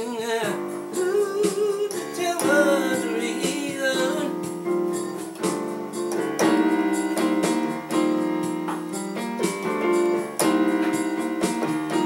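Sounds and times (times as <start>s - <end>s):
electronic keyboard piano chords: 0.0s - 12.0s.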